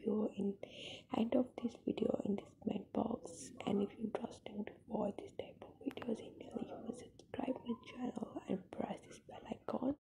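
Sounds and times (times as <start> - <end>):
person whispering softly: 0.0 - 10.0.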